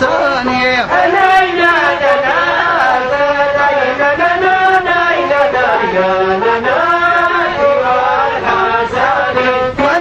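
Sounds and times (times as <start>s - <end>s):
person singing chant-like melody: 0.0s - 10.0s.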